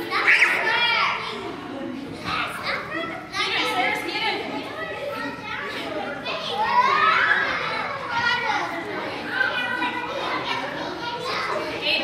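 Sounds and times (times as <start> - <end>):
children calling out and chattering: 0.0 - 12.0.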